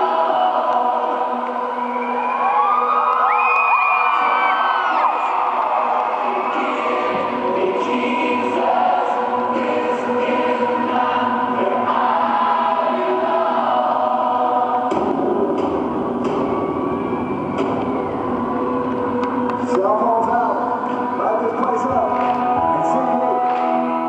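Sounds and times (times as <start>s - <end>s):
crowd screaming and whooping: 1.6s - 7.4s, 15.9s - 19.6s.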